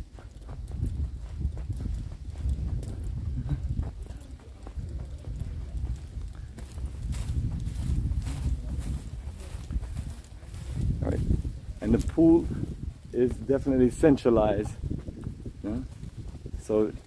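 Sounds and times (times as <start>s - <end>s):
footsteps on hard path: 0.0s - 17.0s
low microphone rumble: 0.0s - 17.0s.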